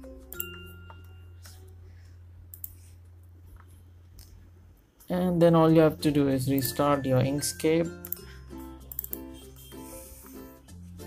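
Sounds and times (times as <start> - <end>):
low steady hum: 0.0 - 10.3
computer mouse clicks: 2.5 - 2.8, 8.9 - 9.3.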